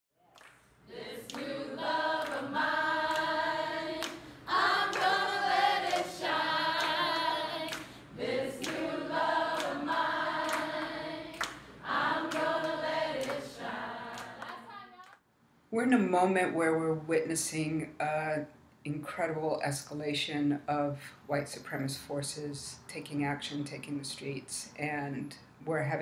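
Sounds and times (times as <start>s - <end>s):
hand claps: 0.3s - 1.5s, 2.2s - 2.5s, 3.1s - 3.4s, 4.0s - 8.0s, 8.6s - 8.9s, 9.5s - 15.2s
group singing unaccompanied: 0.8s - 15.1s.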